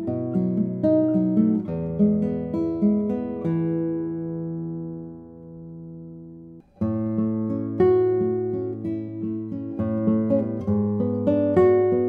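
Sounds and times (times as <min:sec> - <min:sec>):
classical guitar playing: 0:00.0 - 0:12.0.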